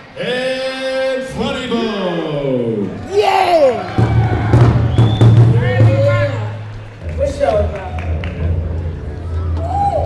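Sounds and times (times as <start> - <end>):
person calling out: 3.1 - 3.8.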